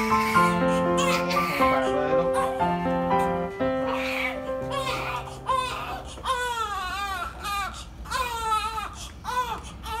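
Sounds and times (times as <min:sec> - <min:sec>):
newborn baby crying: 0:00.0 - 0:02.8, 0:03.7 - 0:10.0.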